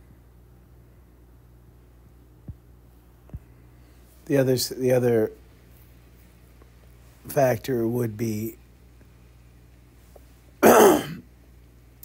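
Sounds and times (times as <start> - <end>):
man clearing his throat: 10.6 - 11.3.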